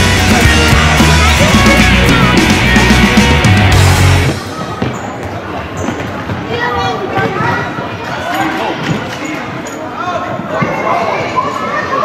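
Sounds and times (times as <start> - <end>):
rock music: 0.0 - 4.4
voices in a hall: 4.2 - 12.0.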